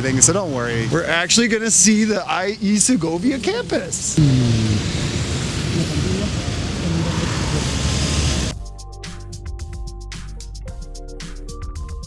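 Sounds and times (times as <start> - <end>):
steady traffic noise: 0.0 - 8.5
indistinct voices: 2.5 - 8.5.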